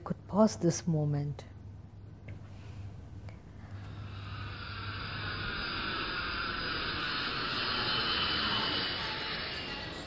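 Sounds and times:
jet airliner passing overhead: 3.8 - 10.0.

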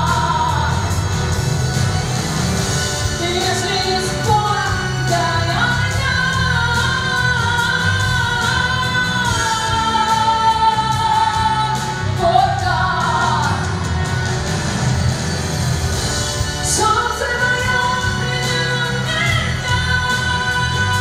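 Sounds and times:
woman singing slow song: 0.0 - 1.0, 3.2 - 13.8, 16.7 - 21.0.

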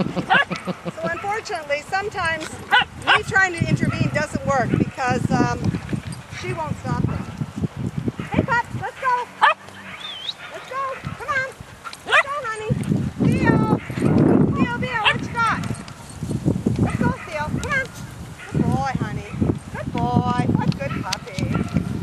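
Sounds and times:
puppies yipping and barking: 0.0 - 6.2, 8.2 - 19.5.

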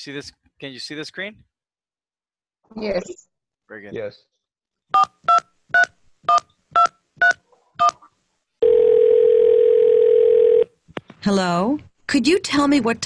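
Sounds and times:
telephone ringing tone: 8.6 - 10.7.

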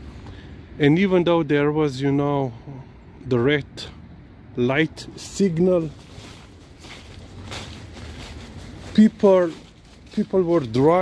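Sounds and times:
low outdoor rumble: 0.0 - 11.0
dry leaves rustling underfoot: 5.0 - 11.0.

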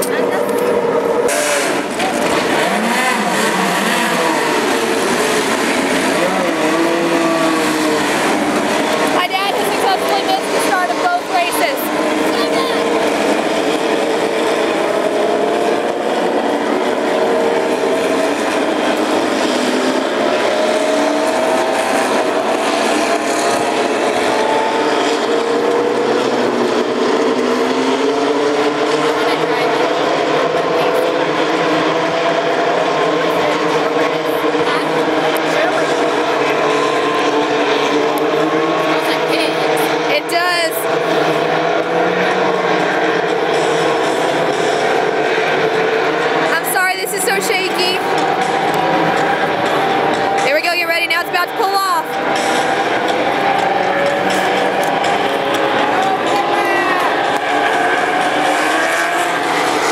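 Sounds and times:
racing car engines droning: 0.0 - 59.9.

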